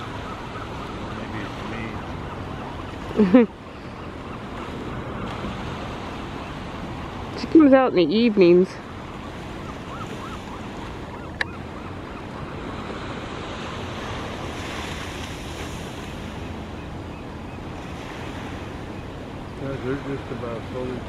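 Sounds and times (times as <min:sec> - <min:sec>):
wind on microphone: 0:00.0 - 0:20.9.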